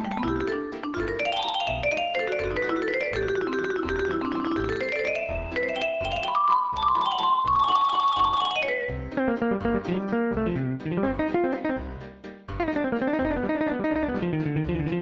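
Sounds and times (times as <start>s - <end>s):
computer playback jazz solo: 0.0s - 15.0s.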